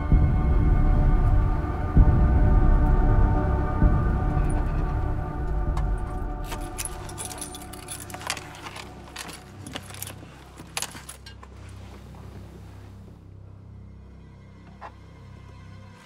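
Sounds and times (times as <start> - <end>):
steady low hum: 0.0 - 15.9
eerie music: 0.0 - 16.0
keys jangling: 5.7 - 11.6.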